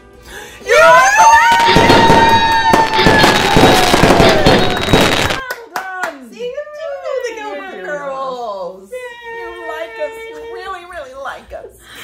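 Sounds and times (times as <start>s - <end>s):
cheering whoop: 0.7s - 5.4s
fireworks crackling bangs: 1.5s - 5.4s
hand clapping: 1.7s - 6.2s.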